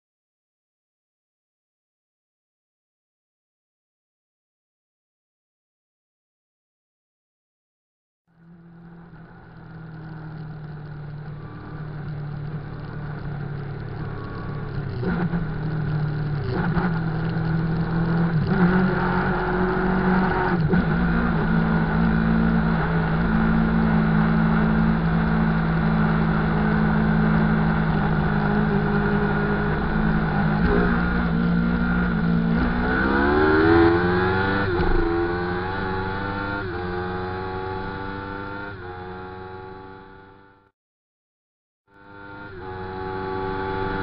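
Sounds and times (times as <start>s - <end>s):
motorcycle engine revving: 8.4s - 40.6s, 42.0s - 44.0s.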